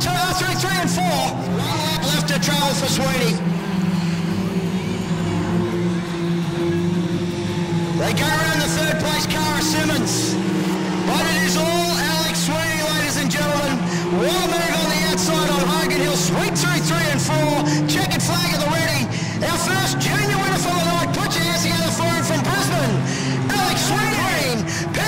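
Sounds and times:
race car engines running: 0:00.0 - 0:25.0.

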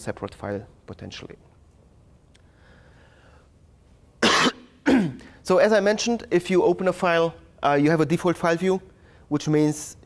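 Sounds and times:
person coughing: 0:04.2 - 0:05.4.

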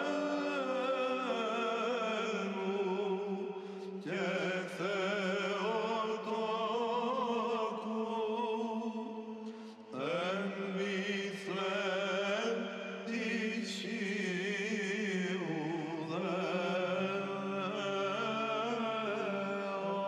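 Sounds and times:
held vocal drone: 0:00.0 - 0:20.0
male choir chanting: 0:00.0 - 0:20.0.

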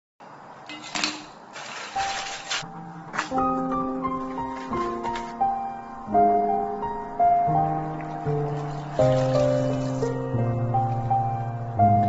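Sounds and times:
water pouring: 0:08.0 - 0:10.3.

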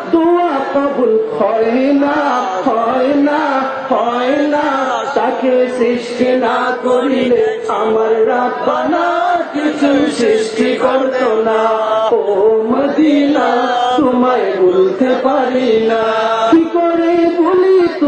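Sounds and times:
man singing unaccompanied: 0:00.0 - 0:18.0.

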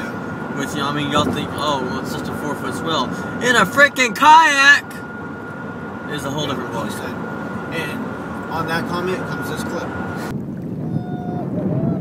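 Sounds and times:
wind buffeting microphone: 0:00.0 - 0:02.5, 0:07.3 - 0:12.0.

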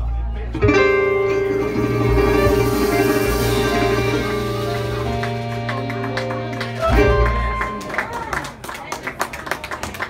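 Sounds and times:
guitar: 0:00.5 - 0:08.1
upright bass notes: 0:00.6 - 0:07.8
accordion: 0:01.0 - 0:07.8.

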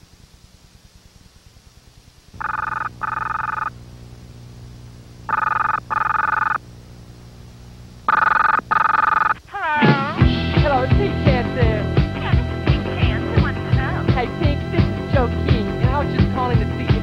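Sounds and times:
telephone double ring: 0:02.4 - 0:03.7, 0:05.3 - 0:06.6, 0:08.1 - 0:09.4.

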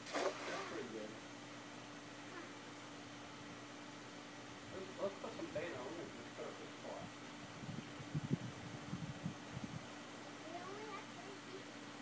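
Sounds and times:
net splashing on water: 0:00.0 - 0:00.9.

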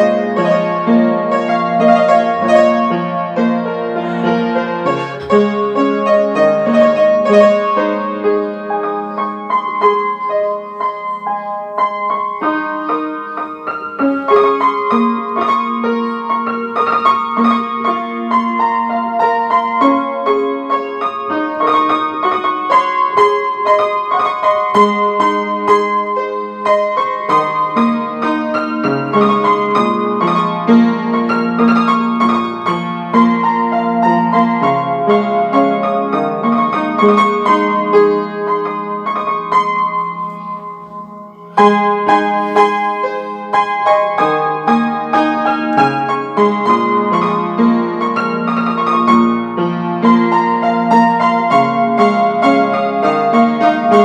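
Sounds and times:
piano music: 0:00.0 - 0:54.0.

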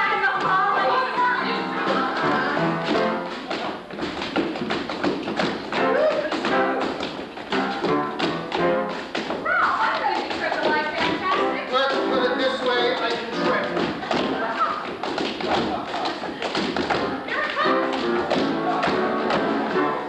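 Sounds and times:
lively musical theatre music: 0:00.0 - 0:04.6, 0:05.3 - 0:09.4, 0:10.0 - 0:14.6, 0:15.4 - 0:20.0
feet tapping on stage floor: 0:00.0 - 0:20.0.

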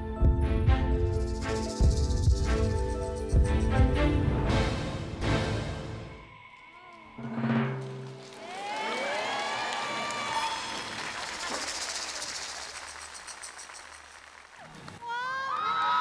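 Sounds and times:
background music: 0:00.0 - 0:06.4
studio audience applause: 0:08.0 - 0:16.0.

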